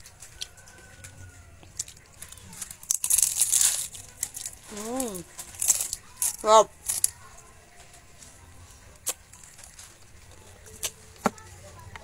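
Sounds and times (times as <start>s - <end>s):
crunch of fried wrapper: 0.0s - 8.3s.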